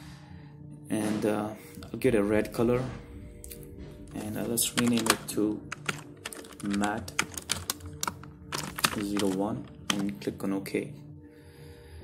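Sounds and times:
computer keyboard typing: 4.4s - 10.2s.

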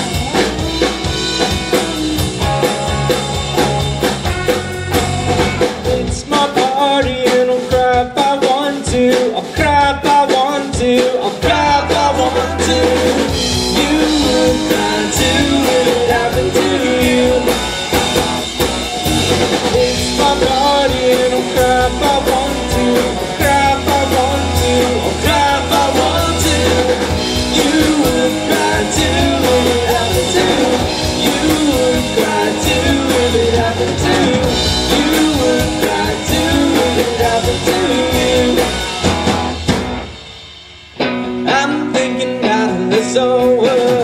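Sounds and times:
person singing: 0.0s - 4.6s, 5.4s - 18.2s, 19.0s - 39.4s, 41.4s - 44.0s
deep bass: 0.0s - 6.4s, 11.4s - 40.3s
live rock band playing: 0.0s - 44.0s.

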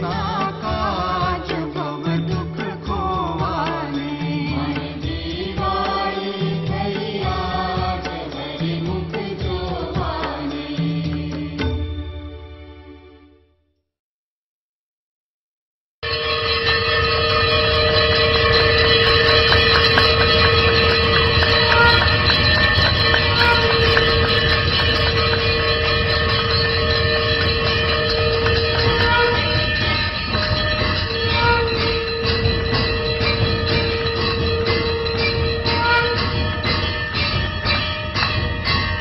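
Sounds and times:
blaring horn tones: 16.0s - 37.9s
high ringing bell notes: 16.0s - 39.0s
quick repeated drum beats: 18.6s - 39.0s.

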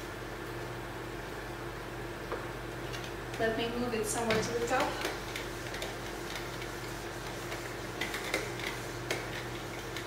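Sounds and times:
steady low hum: 0.0s - 10.0s
eraser scraping whiteboard: 4.7s - 10.0s.

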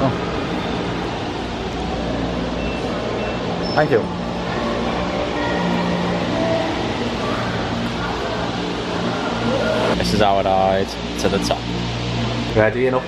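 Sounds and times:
gondola lift machinery humming: 0.0s - 13.0s.

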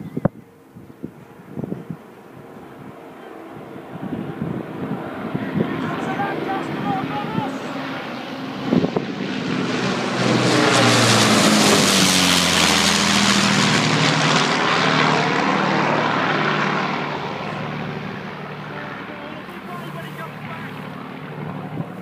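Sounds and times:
propeller plane flying overhead: 0.0s - 22.0s.

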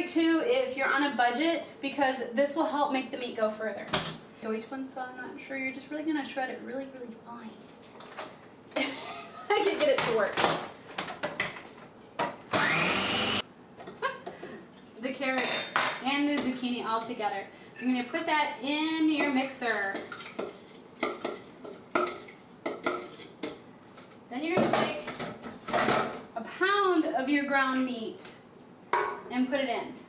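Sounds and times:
woman speaking: 0.0s - 7.7s, 9.4s - 10.4s, 15.0s - 20.1s, 24.3s - 25.1s, 26.4s - 28.4s, 29.3s - 30.0s
food processor motor whining: 12.5s - 13.4s.

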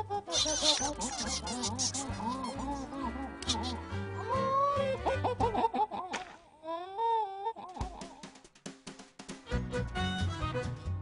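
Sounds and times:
cartoon bird squawks: 0.3s - 3.8s.

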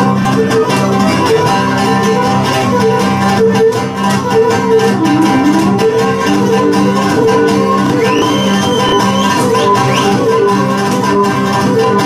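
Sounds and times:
bowed lyra melody: 0.0s - 12.0s
strummed lute accompaniment: 0.0s - 12.0s.

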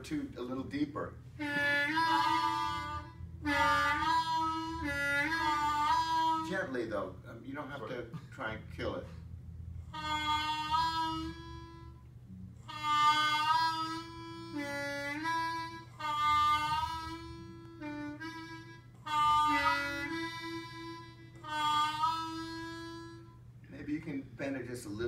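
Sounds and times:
blues harmonica notes: 0.0s - 25.0s.

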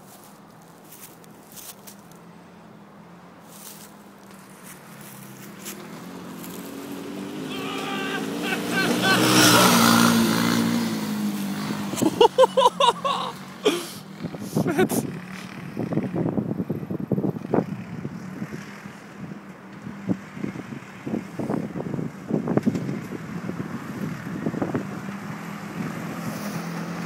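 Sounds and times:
buggy engine driving by: 4.0s - 27.0s
person calling out: 7.5s - 9.8s, 12.1s - 13.8s, 14.6s - 15.1s.

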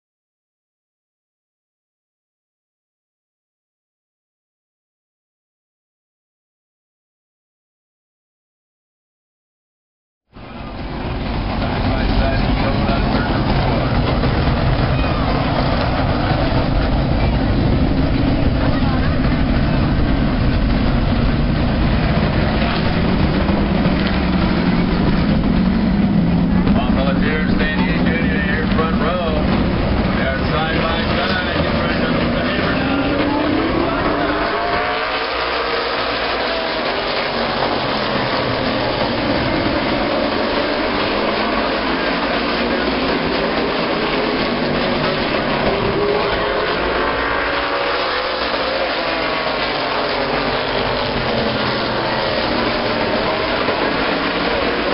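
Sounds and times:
race car engines passing: 10.4s - 54.9s.

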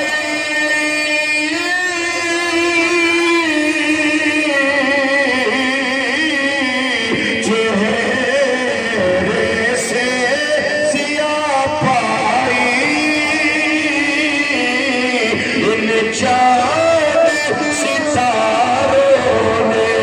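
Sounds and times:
man singing devotional song: 0.0s - 20.0s.

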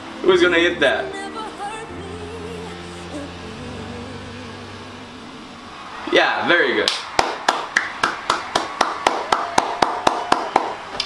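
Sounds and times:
person clapping hands: 6.8s - 11.0s.

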